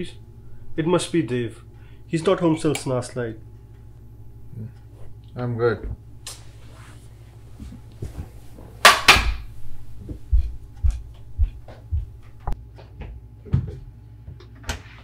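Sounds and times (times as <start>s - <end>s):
footsteps on floor: 5.8s - 13.8s.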